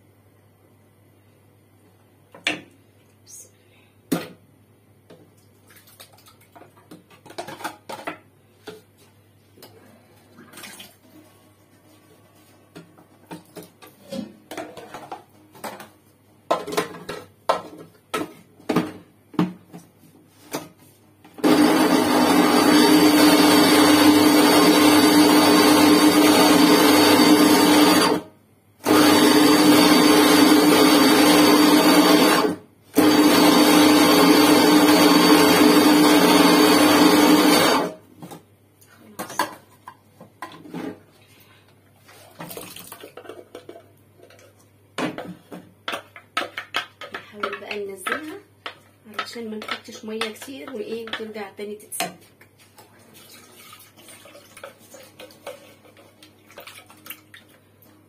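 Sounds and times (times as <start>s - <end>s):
electric blender running: 21.4s - 38.0s.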